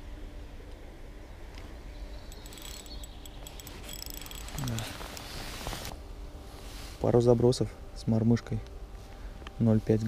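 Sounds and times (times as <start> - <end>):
fishing reel clicking: 2.3 - 5.3.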